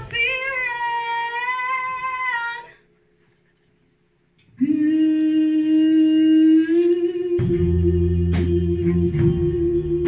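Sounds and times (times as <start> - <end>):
band with low bass note: 7.1 - 10.0.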